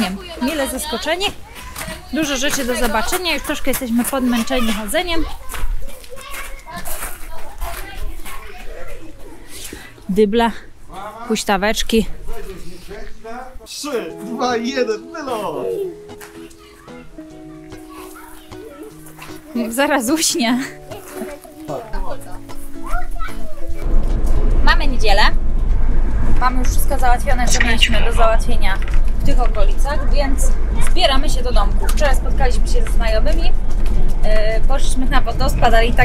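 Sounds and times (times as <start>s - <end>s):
children playing and calling: 0.0s - 11.0s, 12.1s - 36.0s
child's voice: 0.2s - 2.1s, 4.2s - 9.0s, 16.4s - 19.7s, 22.8s - 23.8s
person talking: 13.7s - 16.1s
light background music: 13.7s - 36.0s
engine and road rumble: 23.6s - 36.0s.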